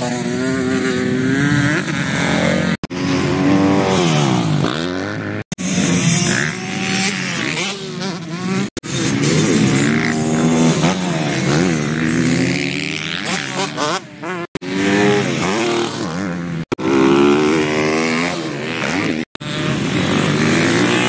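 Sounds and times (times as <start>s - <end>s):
dirt bike engines revving: 0.0s - 21.0s.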